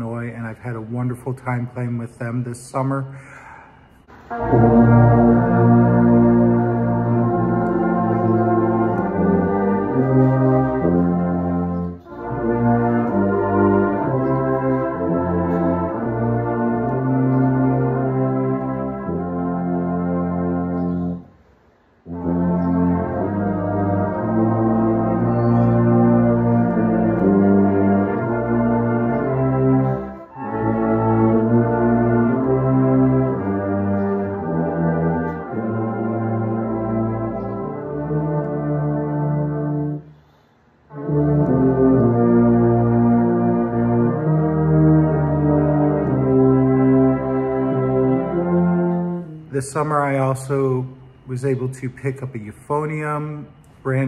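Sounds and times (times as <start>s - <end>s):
tuba melody: 0.0s - 54.0s.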